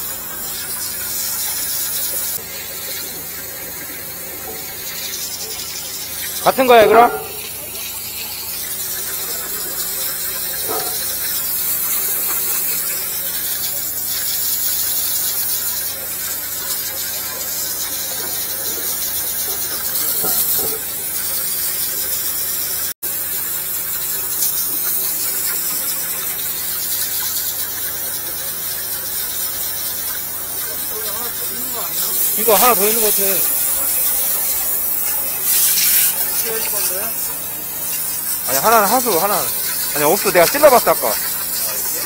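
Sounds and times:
pressure washer spray hissing: 0.0s - 42.0s.

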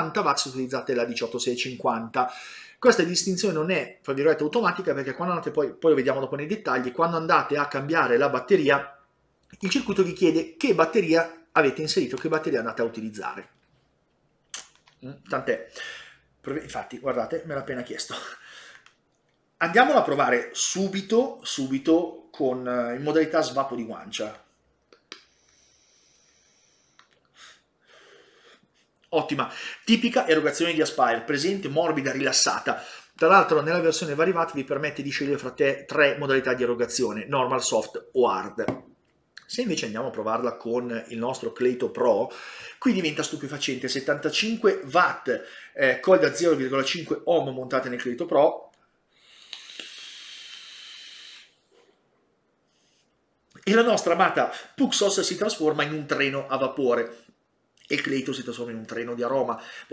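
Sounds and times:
airflow hiss with thin whistle: 49.2s - 52.0s.

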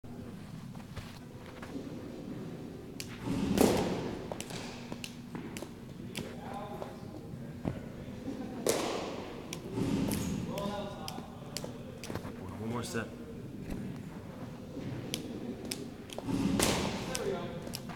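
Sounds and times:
baseballs hitting catcher's mitt: 3.0s - 6.7s, 8.6s - 12.2s, 15.1s - 17.9s.

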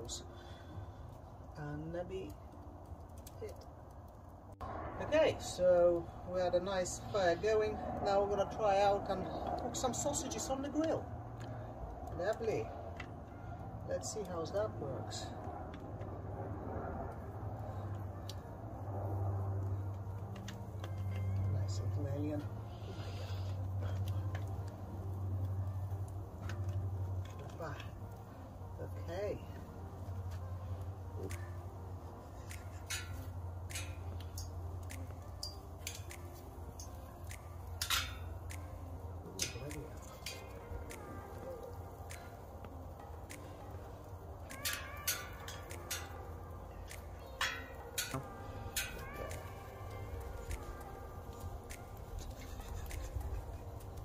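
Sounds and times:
steady low rumble: 0.0s - 54.0s
wood fire crackling: 0.0s - 54.0s
sharp pops from fire: 29.2s - 54.0s.

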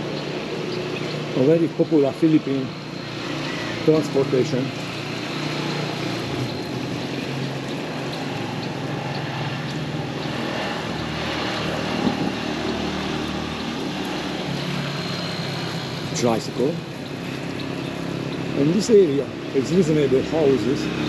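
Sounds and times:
small motorcycle engine droning: 0.0s - 21.0s.

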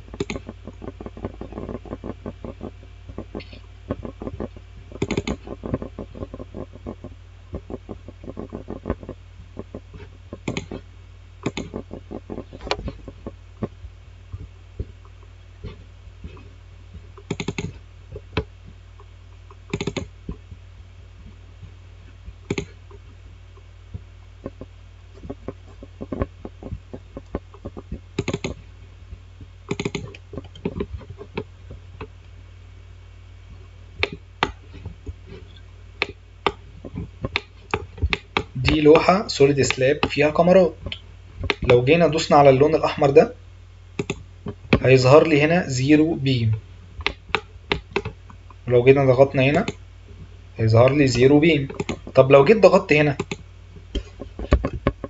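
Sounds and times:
mouse scroll wheel ticking: 0.0s - 10.8s, 11.4s - 13.7s, 17.2s - 18.5s, 19.4s - 20.4s, 22.5s - 22.8s, 24.4s - 28.6s, 29.7s - 31.5s, 35.5s - 41.8s, 44.0s - 44.9s, 47.0s - 48.2s, 50.8s - 52.2s, 53.1s - 53.4s
low electrical hum: 0.0s - 55.0s.

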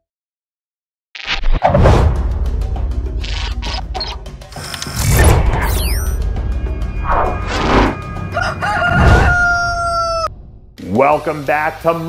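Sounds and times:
rooster crowing: 8.1s - 10.4s.

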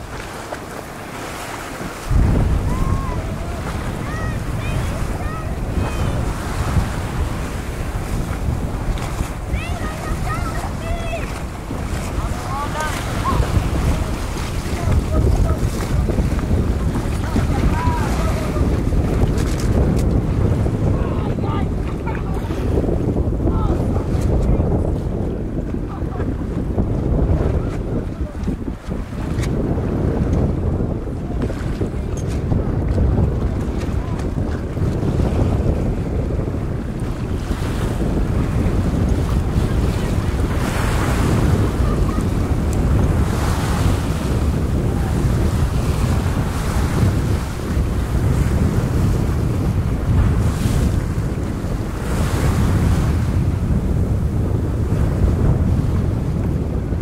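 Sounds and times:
choppy sea water slapping: 0.0s - 57.0s
wind buffeting microphone: 0.0s - 57.0s.

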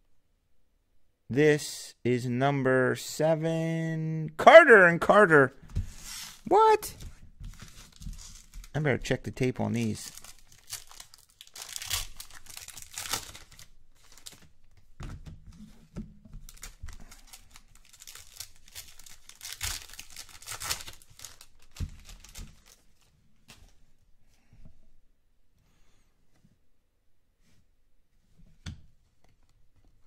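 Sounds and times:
foil wrappers tearing and crinkling: 9.8s - 14.5s, 16.5s - 22.8s.

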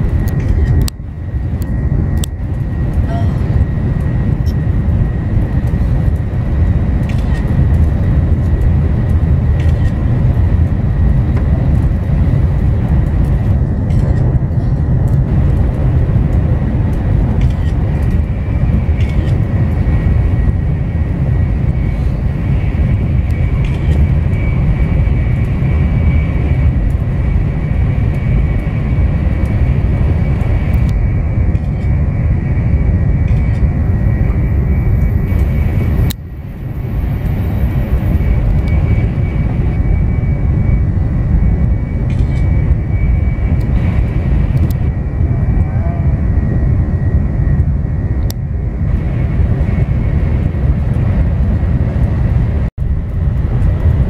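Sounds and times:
high whine: 0.0s - 54.0s
higher whine: 0.0s - 54.0s
train rumble from inside: 0.0s - 54.0s.

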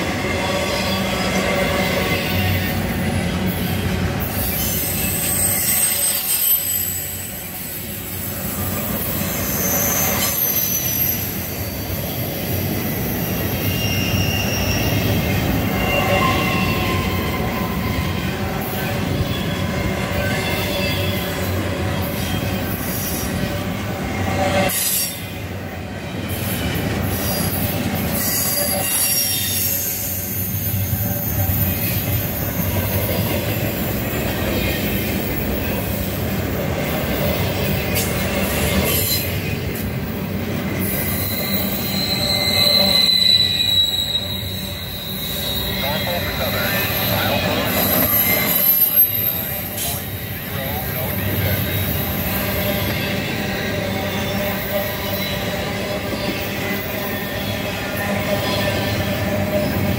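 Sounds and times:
train wheels rumbling on rail: 0.0s - 59.9s
high-pitched wheel squeal: 3.6s - 23.5s, 26.4s - 36.0s, 40.7s - 59.9s.

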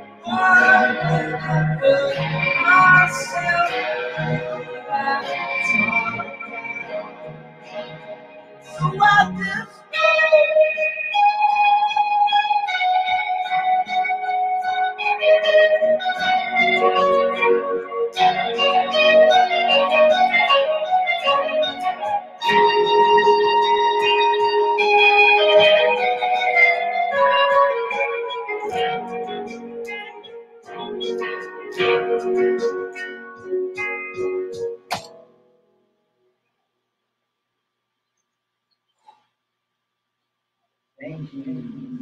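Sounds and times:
rock band playing: 2.0s - 35.1s.

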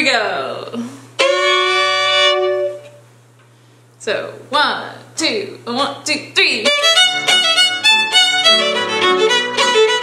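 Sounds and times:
low steady hum: 0.0s - 10.0s
bowed fiddle note: 1.2s - 3.0s, 6.6s - 10.0s.

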